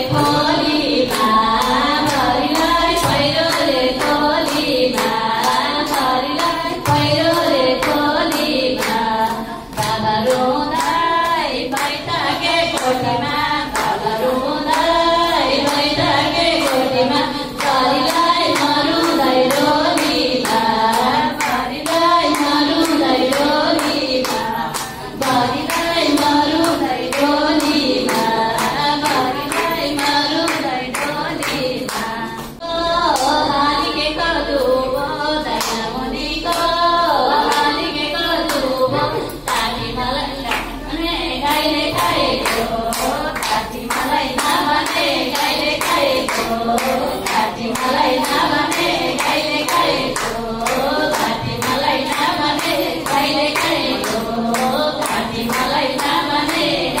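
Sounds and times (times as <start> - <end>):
hand-clapping beat: 0.0 - 57.0
women singing folk song: 0.0 - 57.0.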